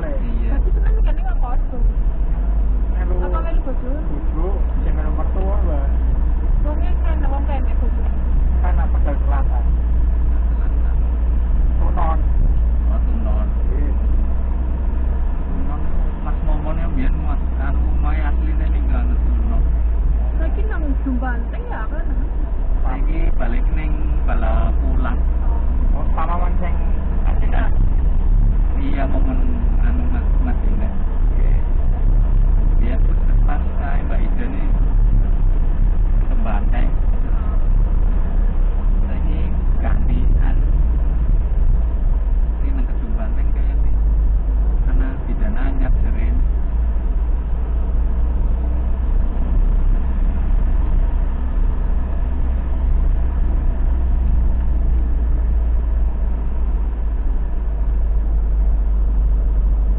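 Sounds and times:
engine and road rumble: 0.0 - 59.9
indistinct voices talking: 0.0 - 59.9.

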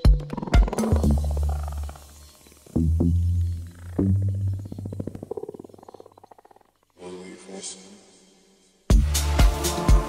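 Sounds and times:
fast buzzing flutter: 0.0 - 6.9.

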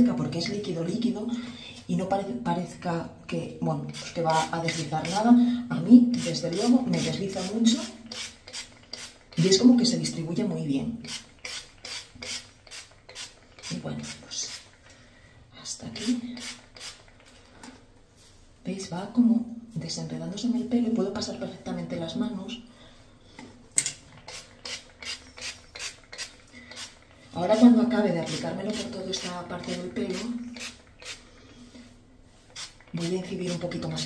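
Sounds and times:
spray bottle hissing: 6.9 - 9.3, 11.0 - 13.8, 16.4 - 17.1, 24.3 - 27.0, 28.2 - 31.2, 32.5 - 33.6.

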